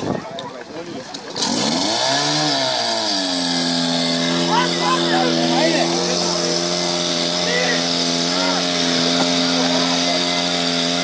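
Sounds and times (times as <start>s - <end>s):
pump engine revving: 0.0s - 11.0s.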